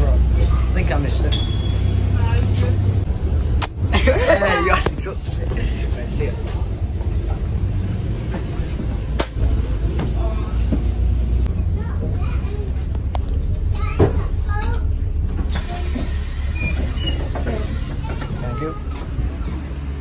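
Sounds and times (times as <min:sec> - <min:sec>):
bus cabin rumble: 0:00.0 - 0:20.0
child's voice: 0:11.5 - 0:16.1, 0:17.7 - 0:19.7.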